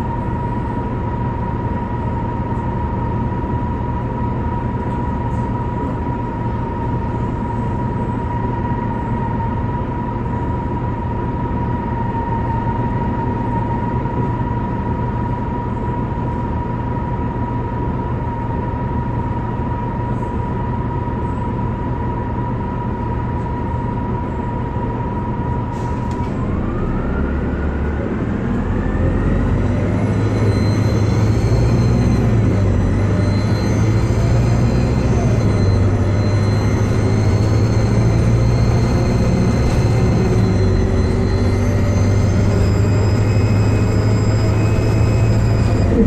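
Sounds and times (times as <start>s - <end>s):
bus engine running: 0.0s - 46.0s
transmission whine: 0.0s - 46.0s.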